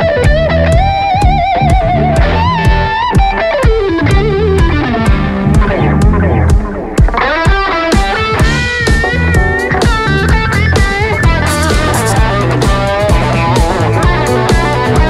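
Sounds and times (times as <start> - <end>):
drum kit groove: 0.0 - 15.0
electric bass: 0.0 - 15.0
electric guitar lead: 0.0 - 15.0.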